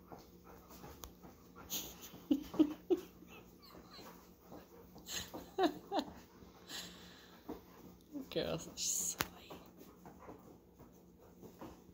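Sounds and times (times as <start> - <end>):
dogs playing with toy: 0.0 - 11.9.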